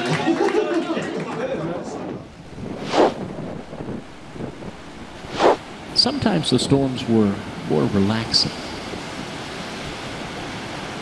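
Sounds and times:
wind and surf: 1.5 - 11.0
loud whooshes: 2.3 - 6.0.

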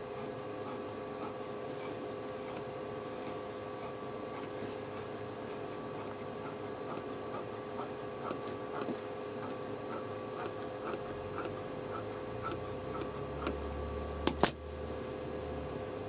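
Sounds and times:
shears snipping fabric: 0.0 - 13.6.

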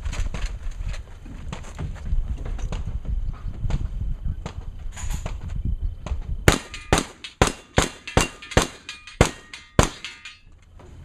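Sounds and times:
gunshots: 6.5 - 10.4.

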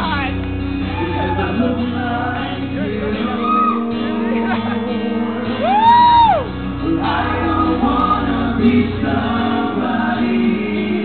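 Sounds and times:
rock band playing: 0.0 - 9.5
men singing together: 0.8 - 11.0.

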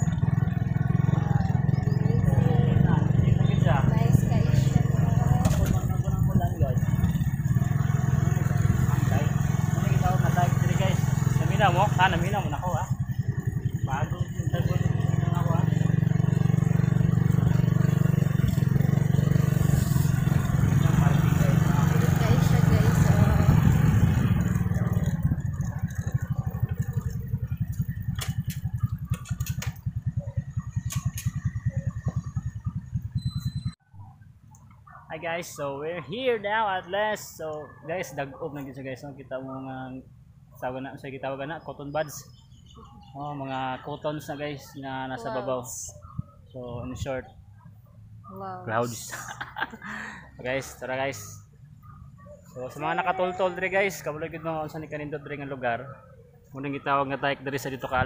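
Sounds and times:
motorcycle engine running: 0.0 - 36.1, 40.2 - 58.0.

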